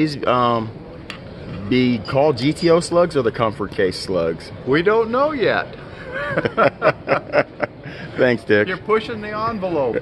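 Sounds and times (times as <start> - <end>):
man laughing: 6.0 - 7.8.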